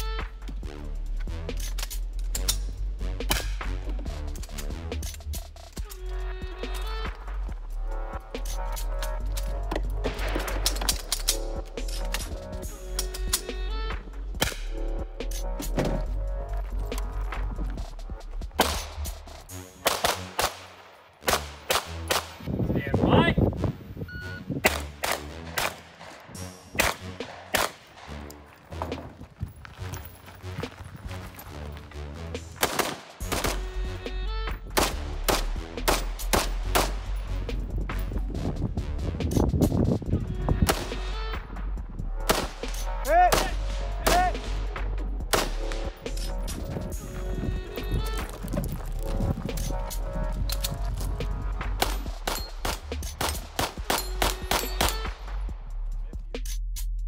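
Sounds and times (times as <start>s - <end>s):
background music with bass line: 0.0s - 20.6s, 21.2s - 57.0s
rapid gunshots: 19.8s - 22.3s, 32.6s - 33.6s.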